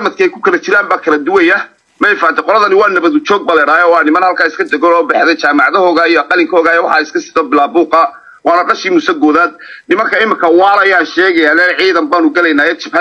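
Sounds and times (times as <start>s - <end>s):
man talking: 0.0s - 13.0s.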